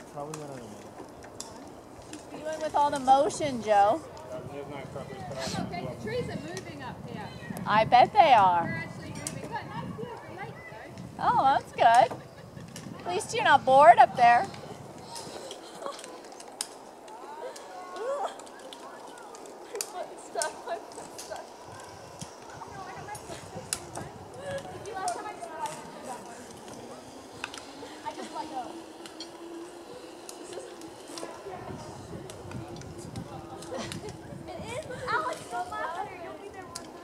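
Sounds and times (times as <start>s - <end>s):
steady low hum: 10.8s - 37.0s.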